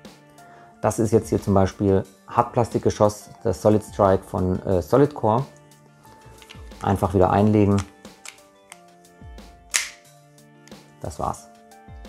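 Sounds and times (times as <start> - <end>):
soft background music: 0.0 - 12.0
plastic cylinder clicks: 7.7 - 8.8, 9.7 - 10.0
sharp snap: 7.7 - 8.9, 9.7 - 10.1.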